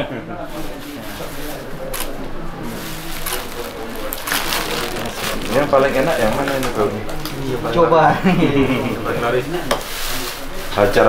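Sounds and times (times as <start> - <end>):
people talking in a crowd: 0.0 - 11.0.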